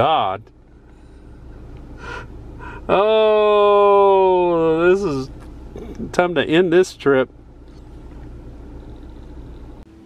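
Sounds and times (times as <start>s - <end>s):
low steady hum: 0.0s - 10.0s
person exhaling breathily: 2.0s - 2.9s.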